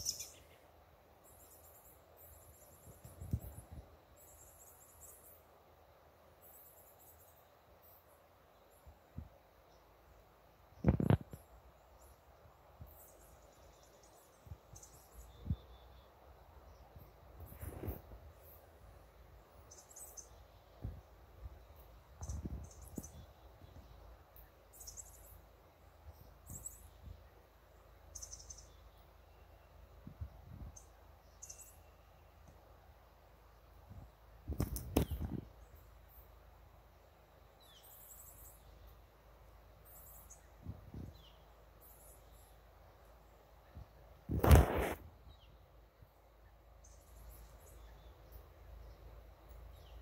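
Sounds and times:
faint high-pitched chirps: 0.0 - 5.5, 6.4 - 18.8, 19.5 - 32.6, 39.8 - 42.6
faint birds: 0.0 - 50.0
faint insects: 0.0 - 50.0.

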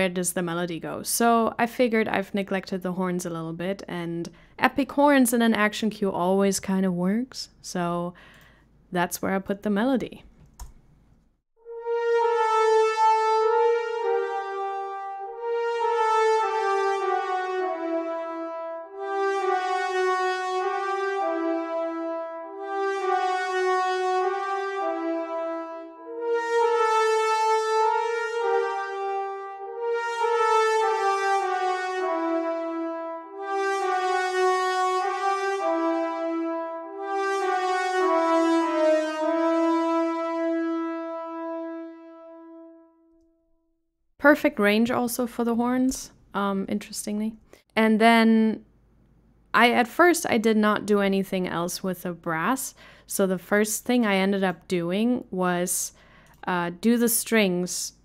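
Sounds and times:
french horn melody: 11.6 - 43.5.

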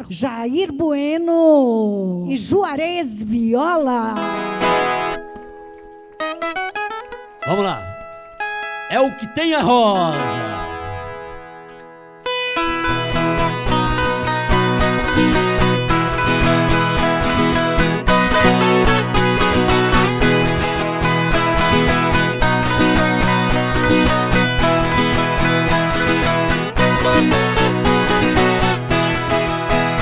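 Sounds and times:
folk guitars playing lively: 3.0 - 30.0.

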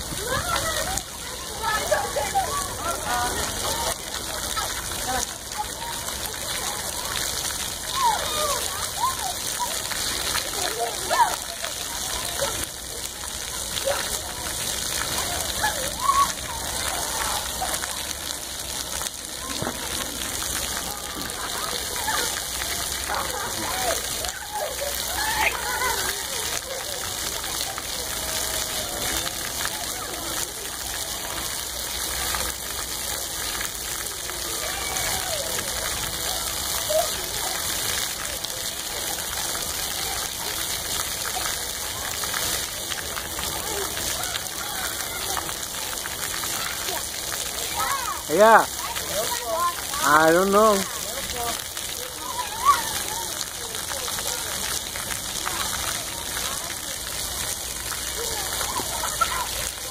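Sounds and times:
children's voices and shouts: 0.0 - 59.9
fountain jets spraying water: 0.0 - 59.9.

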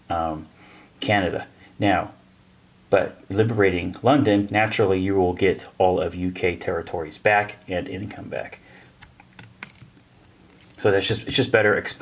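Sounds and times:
man speaking: 0.1 - 2.2, 2.9 - 8.6, 10.8 - 12.0.

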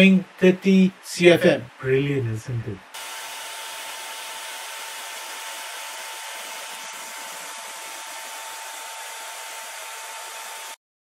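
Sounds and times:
blower fan rushing air with whine: 3.0 - 10.8.

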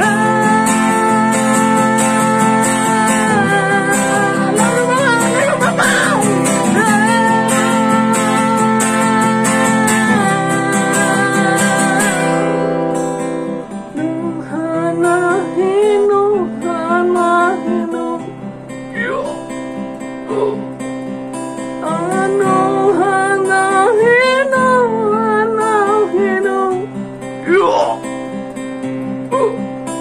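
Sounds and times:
man singing: 0.0 - 12.5
acoustic guitar strumming: 0.0 - 30.0.

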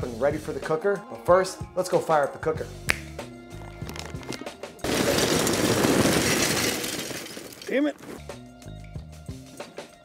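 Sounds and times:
background music: 0.0 - 10.0
charcoal pouring into metal chimney: 4.8 - 8.2.

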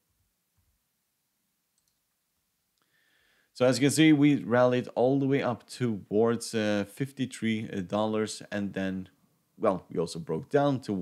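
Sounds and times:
faint mouse clicks: 1.8 - 2.2.

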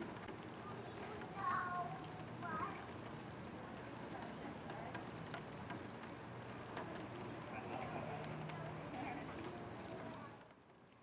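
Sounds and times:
outdoor background noise: 0.0 - 11.0
people chattering: 6.8 - 10.5.

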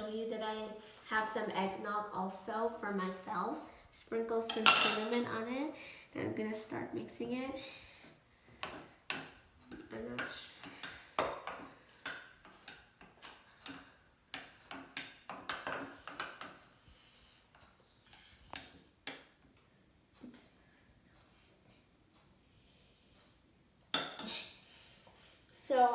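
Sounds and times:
metal spoon clinking in glass: 4.5 - 5.2.

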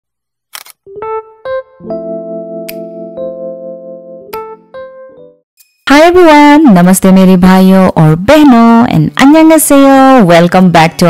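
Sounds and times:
camera shutter click: 0.5 - 0.8
electric piano notes and chord: 0.9 - 5.4.

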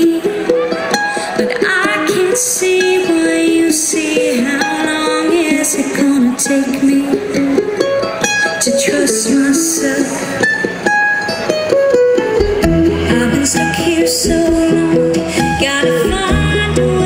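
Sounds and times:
mandolin playing a melody: 0.0 - 17.0
low bass line: 12.4 - 17.0.

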